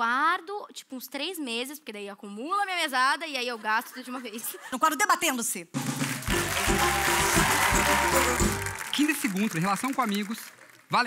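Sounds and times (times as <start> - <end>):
band playing instrumental: 5.8 - 9.0.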